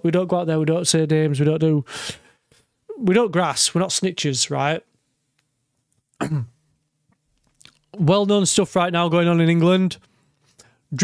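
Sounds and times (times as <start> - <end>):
man clearing his throat: 6.2 - 6.6.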